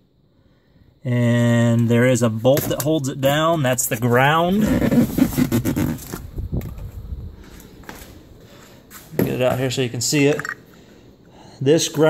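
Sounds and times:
handling noise: 2.5 - 8.2.

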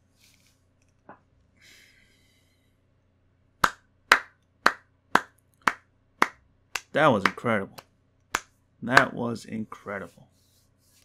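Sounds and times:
person clapping: 3.6 - 7.4, 8.3 - 9.1.

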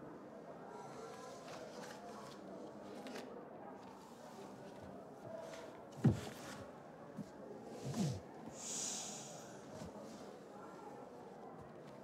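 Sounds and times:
person sniffing: 7.9 - 9.6.

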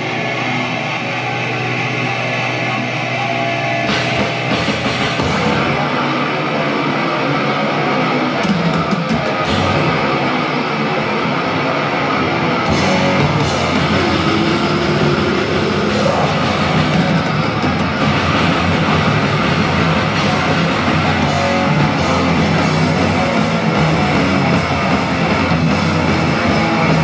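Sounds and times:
heavy metal band playing: 0.0 - 27.0.

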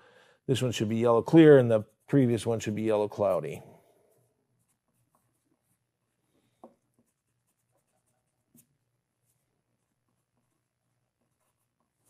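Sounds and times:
pencil scratching on paper: 4.1 - 12.0.

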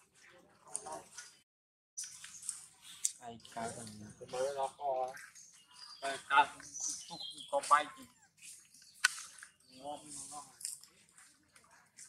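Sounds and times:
person's voice: 3.3 - 5.1.

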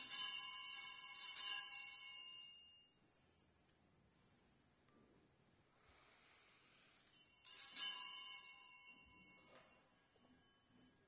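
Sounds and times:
altar bells ringing: 0.0 - 3.2, 7.0 - 11.0.

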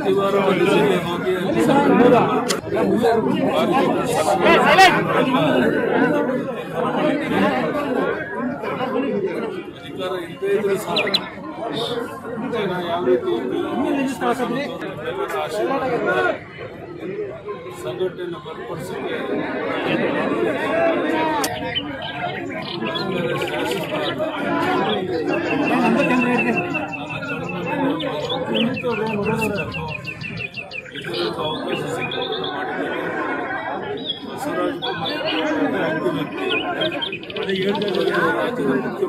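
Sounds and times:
men talking: 0.0 - 39.0
people chattering: 0.0 - 39.0.

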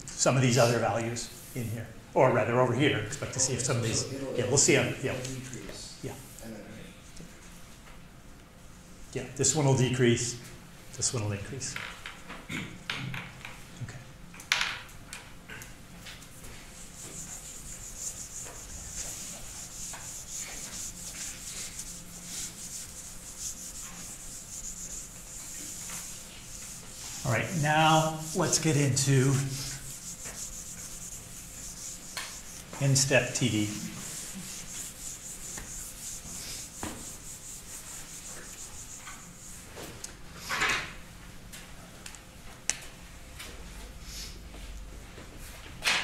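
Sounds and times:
eraser rubbing on whiteboard: 16.6 - 39.7.

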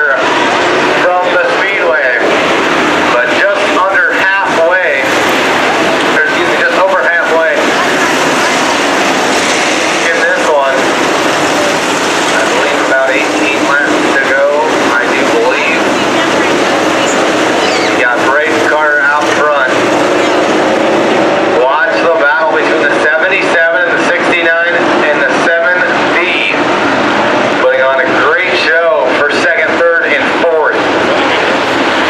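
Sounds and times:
race car engines roaring: 0.0 - 32.0
person talking: 6.0 - 9.1, 10.0 - 20.4.

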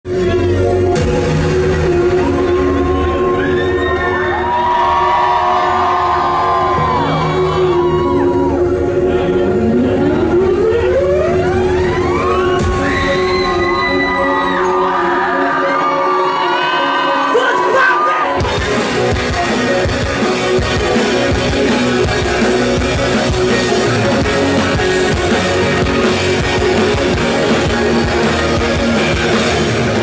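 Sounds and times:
intro music over pa system: 0.1 - 30.0
crowd cheering and screaming: 1.3 - 30.0.

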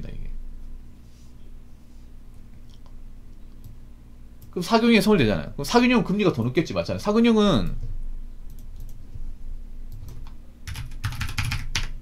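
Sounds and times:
computer keyboard typing: 9.9 - 12.0.

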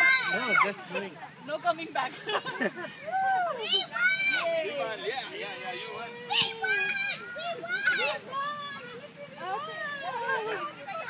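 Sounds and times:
children shouting and squealing: 0.0 - 0.9, 2.5 - 11.0
adults talking: 0.0 - 11.0.

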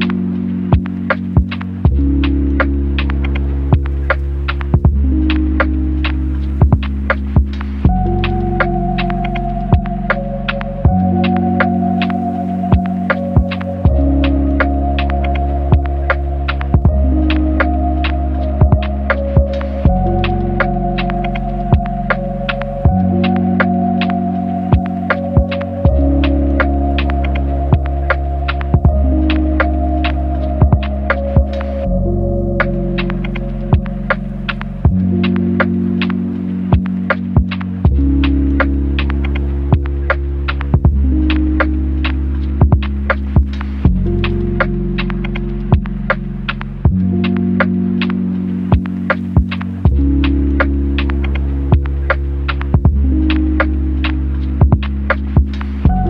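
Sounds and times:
deep bass chords: 0.0 - 56.0.

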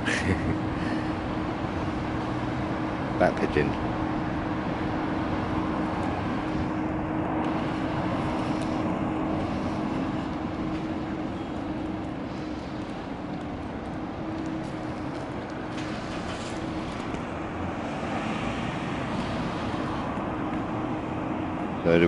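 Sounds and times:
constant low hum: 0.0 - 22.0
outdoor traffic noise: 0.0 - 22.0.

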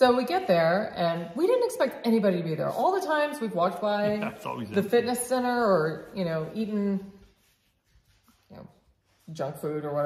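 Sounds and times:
person speaking softly: 4.1 - 5.0.

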